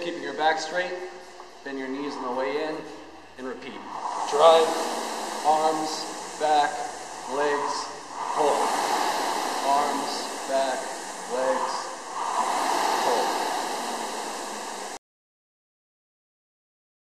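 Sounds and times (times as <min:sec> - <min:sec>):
rowing machine fan whooshing: 0:00.0 - 0:15.0.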